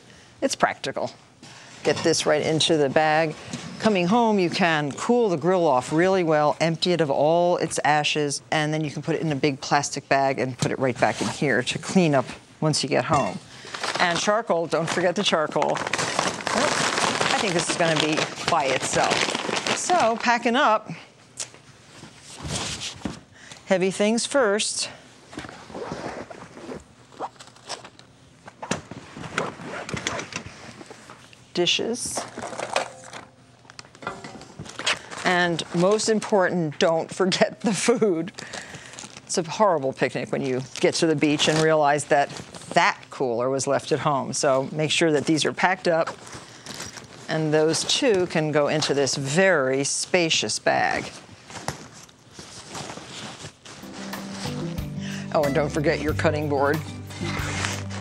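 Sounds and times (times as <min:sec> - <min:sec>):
items scraping against fabric: 0:13.3 - 0:20.4, 0:50.9 - 0:54.6, 0:57.2 - 0:58.0
fabric rustling: 0:51.0 - 0:54.6, 0:57.2 - 0:58.0.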